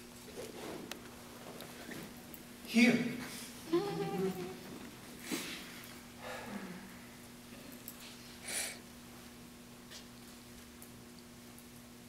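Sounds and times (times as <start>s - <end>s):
steady low hum: 0.0s - 12.0s
soft breath: 8.1s - 8.8s.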